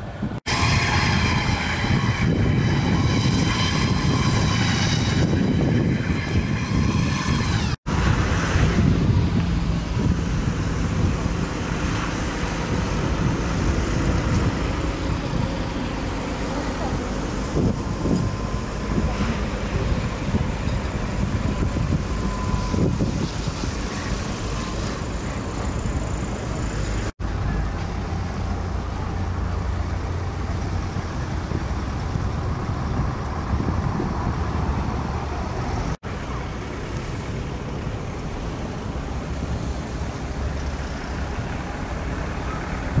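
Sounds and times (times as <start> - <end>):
cars on a wet road: 0.0 - 43.0.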